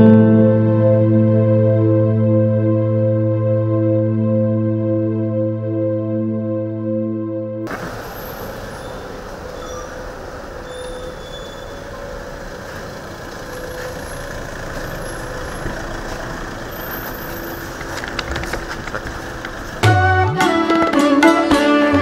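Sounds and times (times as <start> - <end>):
car engine running: 7.7 - 20.0
steady outdoor hum: 7.7 - 22.0
faint bird chirps: 8.0 - 12.4.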